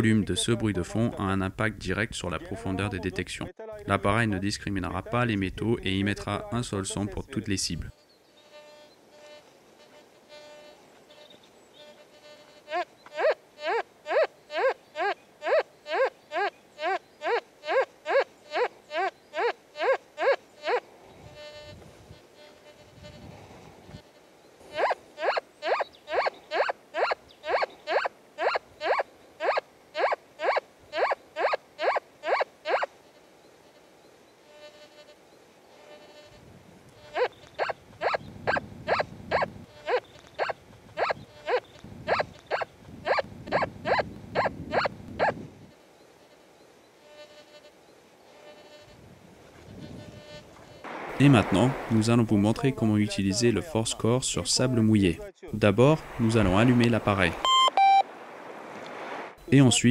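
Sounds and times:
metal detector beeps: 37.1 - 45.4, 57.4 - 58.0
faint metal detector threshold tone: 57.4 - 58.0.

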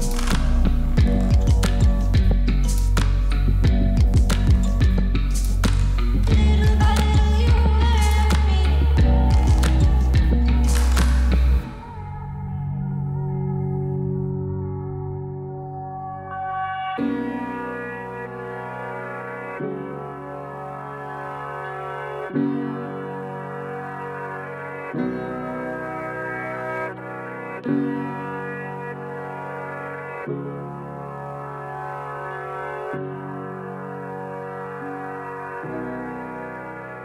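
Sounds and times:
slow sustained chords music: 0.0 - 37.0.

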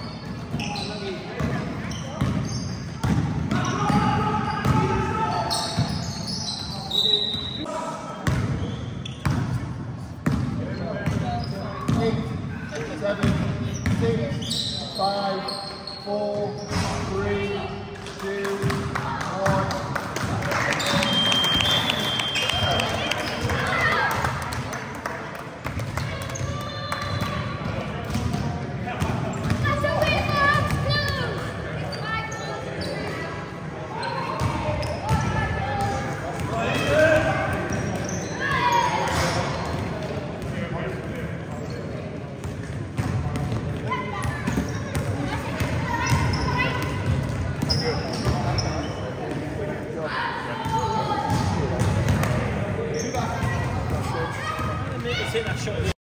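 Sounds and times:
people chattering in a hall: 0.0 - 56.0.

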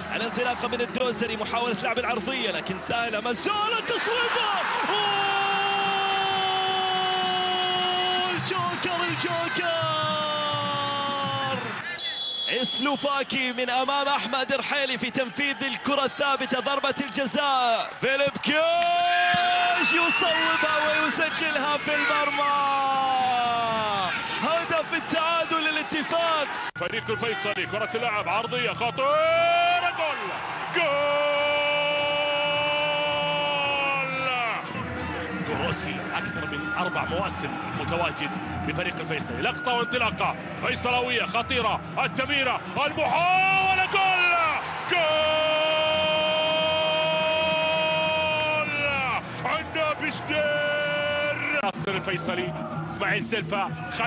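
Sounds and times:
commentator shouting goal: 0.2 - 11.8, 12.5 - 34.7, 40.7 - 54.0
commentator's drawn-out goal cry: 3.5 - 14.0.

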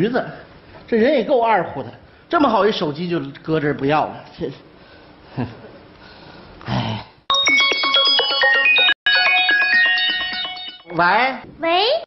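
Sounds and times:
phone ringtone melody: 7.3 - 11.0.

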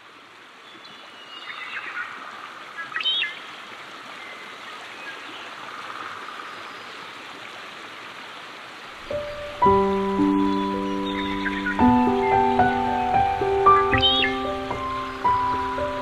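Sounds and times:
small creek running: 0.0 - 16.0
high chirps: 9.3 - 16.0.

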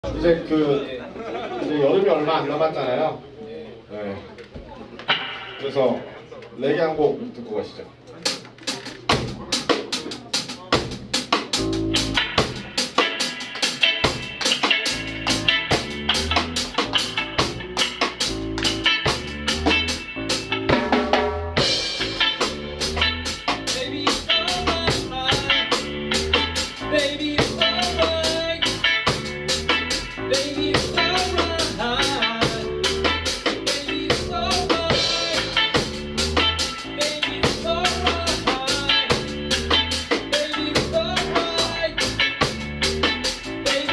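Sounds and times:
live band playing reggae: 5.0 - 6.3, 8.2 - 43.9.

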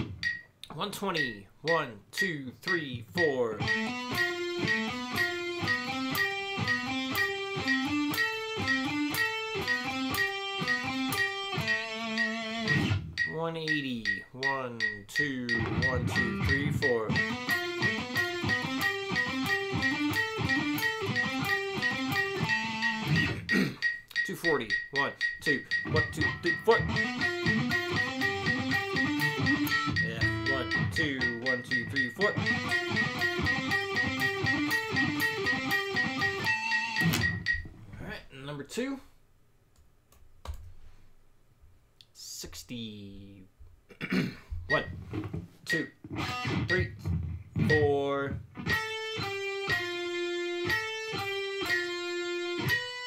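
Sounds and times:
electric guitar single notes: 0.0 - 1.9, 2.7 - 37.7, 44.7 - 53.0
person speaking: 0.0 - 3.7, 13.2 - 17.4, 23.0 - 27.7, 28.3 - 32.6, 37.9 - 39.2, 42.0 - 43.6, 44.7 - 46.0, 46.7 - 48.4
metronome ticking: 0.0 - 37.7, 45.7 - 53.0.

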